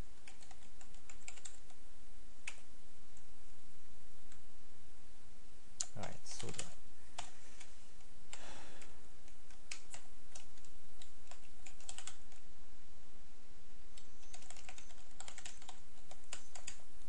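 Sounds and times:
computer keyboard typing: 0.2 - 1.8, 2.4 - 2.7, 6.3 - 7.3, 8.3 - 12.4, 14.0 - 16.8.

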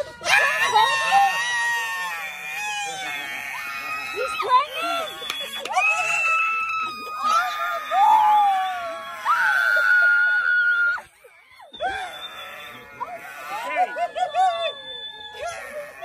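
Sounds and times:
people screaming with excitement: 0.0 - 16.0
voices: 0.0 - 16.0.

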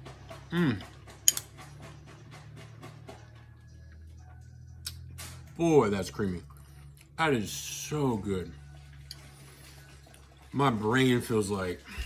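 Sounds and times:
metal spoon clinking on bowl: 1.1 - 1.7.

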